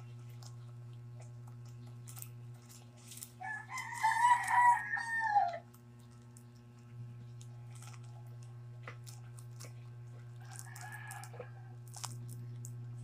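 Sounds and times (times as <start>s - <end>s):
plastic wrapper crinkling: 0.0s - 4.8s, 5.7s - 12.9s
steady low hum: 0.0s - 13.0s
rooster crowing: 3.4s - 5.7s, 10.4s - 11.8s.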